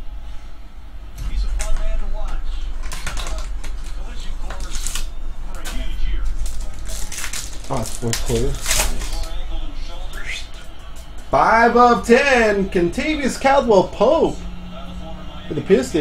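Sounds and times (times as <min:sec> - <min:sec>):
low electrical hum: 0:00.0 - 0:16.0
foil wrapper crinkling: 0:06.4 - 0:09.4.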